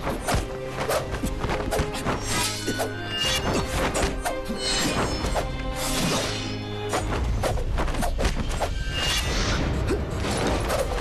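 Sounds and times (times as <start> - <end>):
dramatic background music: 0.0 - 11.0.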